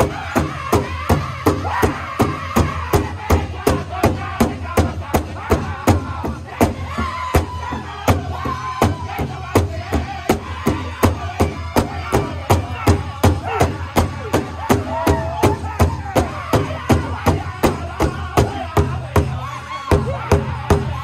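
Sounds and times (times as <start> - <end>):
large drum beating: 0.0 - 21.0
people singing: 0.0 - 21.0.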